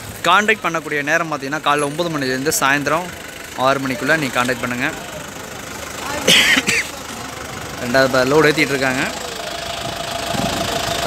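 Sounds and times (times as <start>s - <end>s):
truck engine idling: 0.0s - 11.0s.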